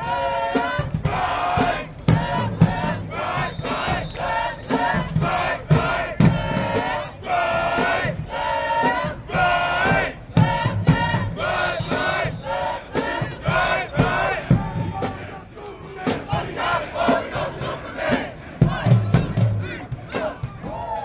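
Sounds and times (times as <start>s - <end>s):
marching band chanting and shouting: 0.0s - 21.0s.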